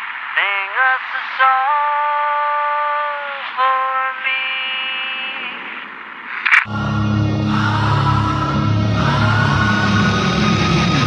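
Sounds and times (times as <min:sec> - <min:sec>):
quiet rock music: 0:06.7 - 0:11.0.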